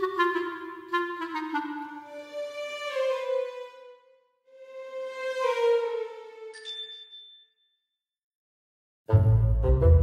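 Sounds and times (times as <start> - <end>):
slow woodwind-like melody: 0.0 - 6.5.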